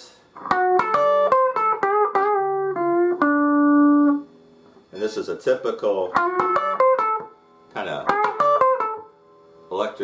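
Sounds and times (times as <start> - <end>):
electric guitar blues lick: 0.4 - 4.8, 6.0 - 9.2.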